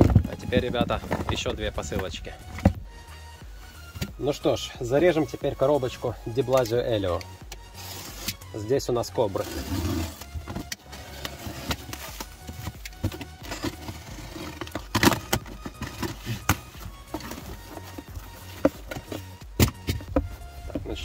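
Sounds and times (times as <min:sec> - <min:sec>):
faint background music: 0:00.0 - 0:21.0.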